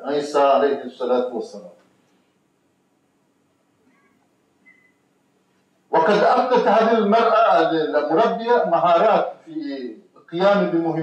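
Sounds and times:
faint low hum: 0.0 - 11.0
faint high-pitched squeak: 3.8 - 5.0.

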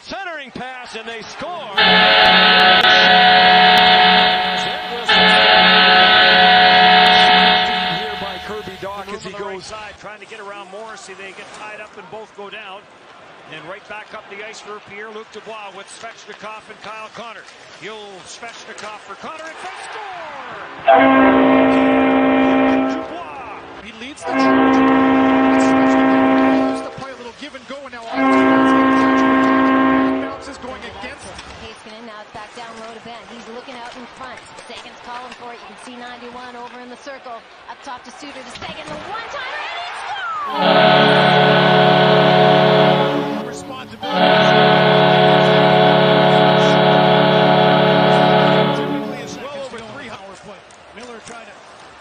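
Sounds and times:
goal horn blast: 1.8 - 9.1, 20.9 - 27.0, 28.1 - 30.9, 40.5 - 49.6.

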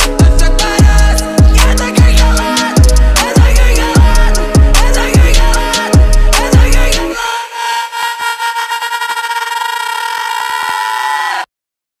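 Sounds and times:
horn-like chord tone: 0.9 - 4.8.

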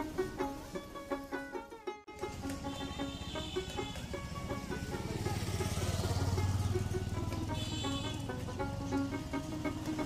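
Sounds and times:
plucked-string music: 0.0 - 10.0
vehicle passing by: 2.2 - 10.0.

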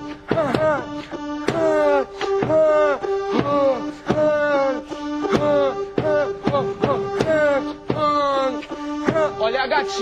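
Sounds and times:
electronic keyboard funk tune: 0.0 - 10.0.

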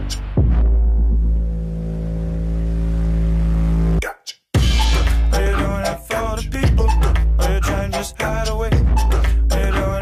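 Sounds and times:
deep low drone: 0.0 - 4.0.

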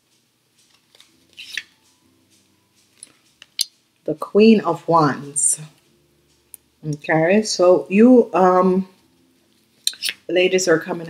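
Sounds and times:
cards ticking: 0.0 - 3.8
card sliding from deck: 0.6 - 2.0.

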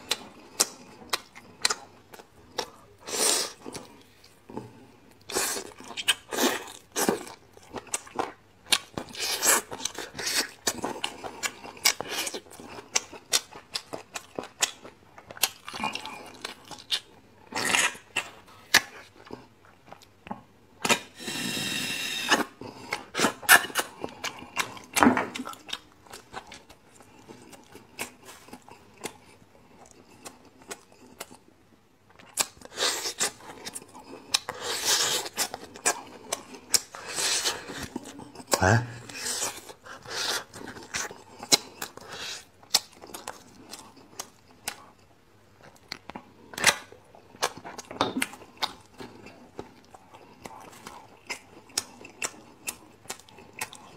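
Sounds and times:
wet chewing: 0.0 - 21.2, 32.1 - 53.9
sucking and slurping: 20.9 - 24.0.

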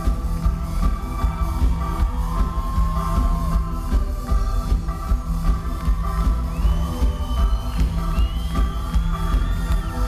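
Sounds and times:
drum beat: 0.0 - 10.0.

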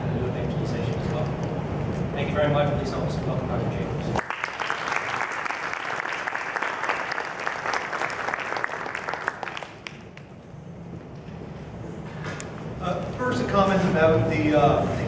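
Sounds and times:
audience applauding: 4.2 - 10.3.

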